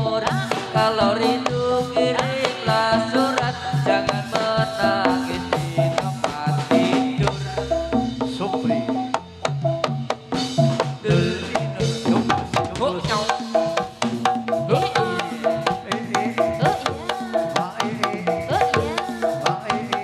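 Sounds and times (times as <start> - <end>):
hand drums busy rhythm: 0.0 - 20.0
pitched melody notes: 4.9 - 10.8.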